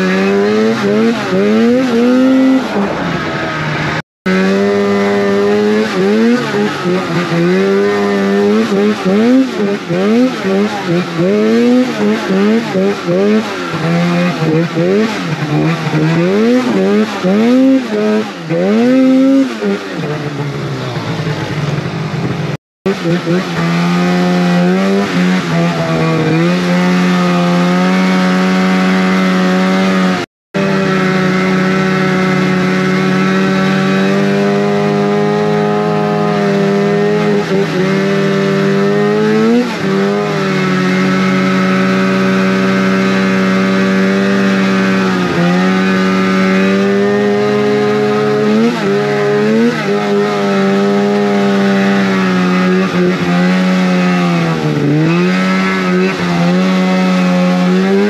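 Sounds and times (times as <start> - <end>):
snowmobile engine revving: 0.0 - 58.0.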